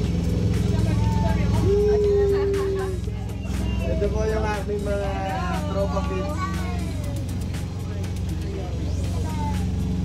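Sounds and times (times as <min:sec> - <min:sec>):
ferry engine drone: 0:00.0 - 0:10.0
music: 0:00.0 - 0:10.0
voices: 0:00.0 - 0:10.0.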